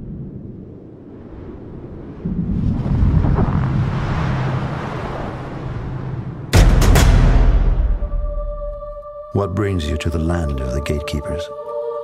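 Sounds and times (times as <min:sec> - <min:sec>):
rushing snowstorm wind: 0:00.0 - 0:06.6
deep rumble: 0:00.0 - 0:09.0.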